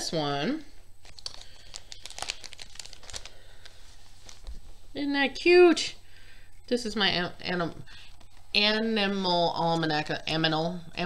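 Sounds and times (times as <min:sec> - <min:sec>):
plastic pouch crinkling: 0:01.0 - 0:04.7.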